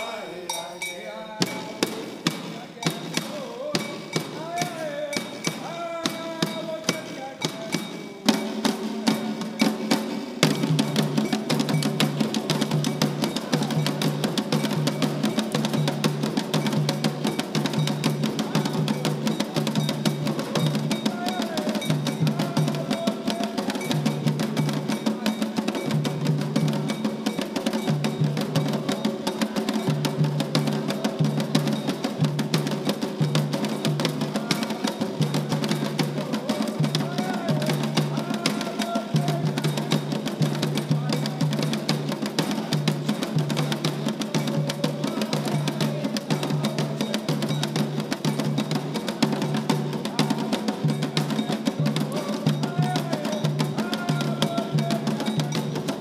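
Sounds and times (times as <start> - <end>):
hand drums playing: 0.0 - 56.0
voices singing: 0.0 - 56.0.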